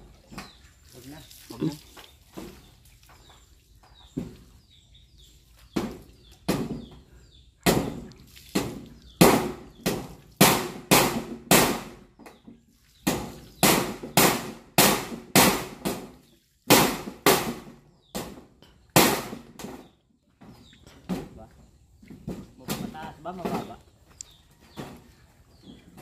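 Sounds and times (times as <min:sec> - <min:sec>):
hammer nailing metal roofing: 0:09.2 - 0:12.0, 0:13.1 - 0:16.1, 0:16.7 - 0:18.4.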